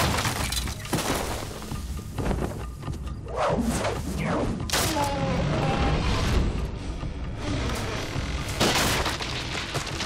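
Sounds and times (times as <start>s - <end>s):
debris breaking: 0.0s - 1.6s, 8.5s - 10.0s.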